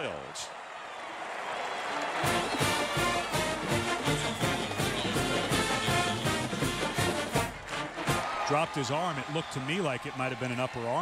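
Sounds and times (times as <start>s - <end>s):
brass band music: 2.0s - 8.4s
steady drum beat: 2.3s - 8.3s.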